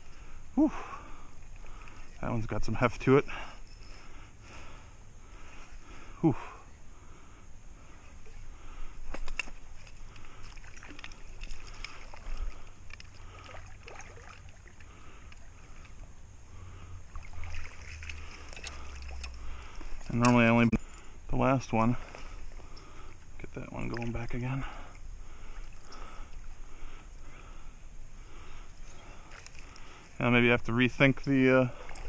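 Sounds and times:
creek water splashing: 0:00.0 - 0:32.0.

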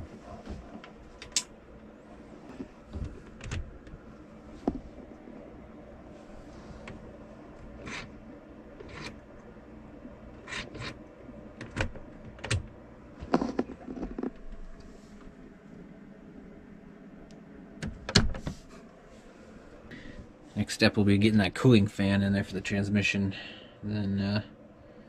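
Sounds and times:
steady low hum: 0:00.0 - 0:25.0
clicks and knocks of handling parts: 0:00.4 - 0:01.5.

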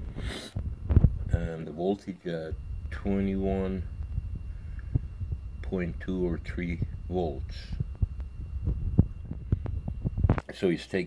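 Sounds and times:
soft low thumps: 0:00.0 - 0:01.5, 0:02.4 - 0:10.4
low rumbling hum: 0:00.0 - 0:10.5.

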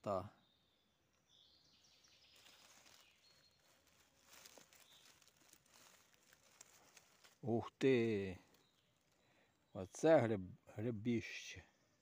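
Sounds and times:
rustling in dry leaves: 0:02.2 - 0:07.7.

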